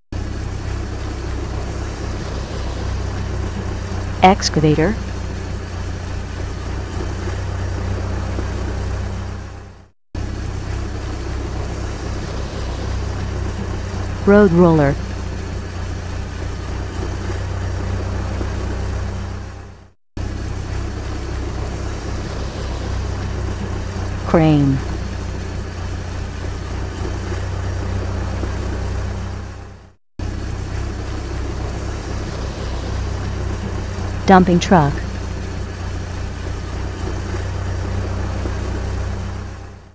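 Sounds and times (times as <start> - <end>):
cartoon excavator engine running: 0.1 - 39.9
road roller engine: 0.1 - 39.9.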